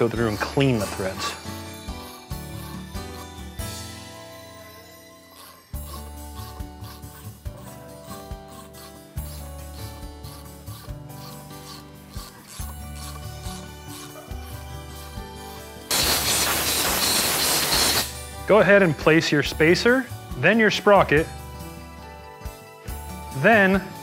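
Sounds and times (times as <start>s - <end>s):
threads rubbing: 0.0s - 21.4s
background music: 0.0s - 24.0s
loud spray hiss: 15.9s - 18.1s.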